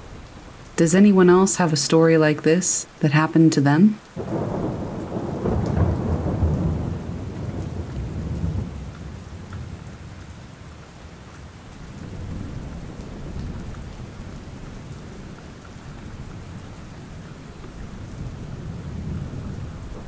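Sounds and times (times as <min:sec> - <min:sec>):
steady rain: 0:00.0 - 0:20.0
thunder rumbling: 0:04.2 - 0:10.8, 0:11.7 - 0:20.0.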